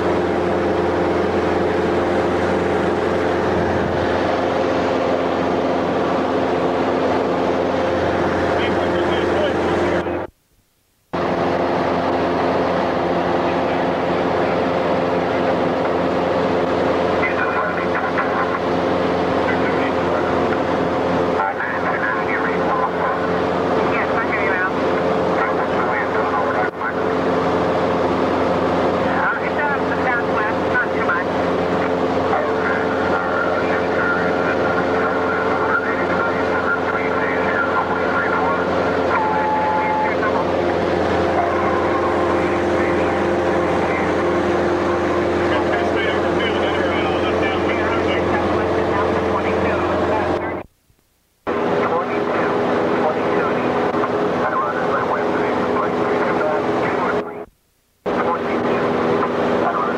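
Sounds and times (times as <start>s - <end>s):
plane engine and propeller drone: 0.0s - 10.4s, 11.1s - 50.8s, 51.4s - 59.9s.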